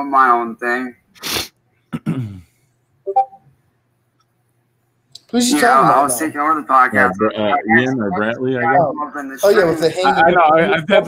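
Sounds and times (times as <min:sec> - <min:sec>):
man clearing his throat: 0:01.9 - 0:02.5.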